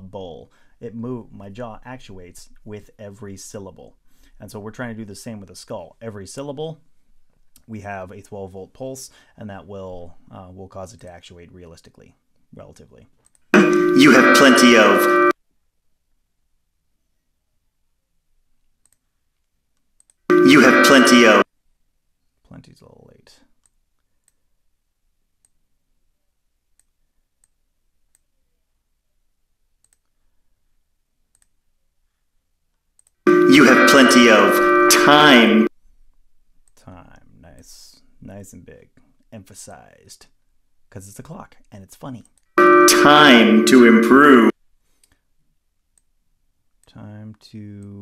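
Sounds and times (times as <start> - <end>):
computer mouse clicks: 29.8 - 30.1, 31.3 - 31.6.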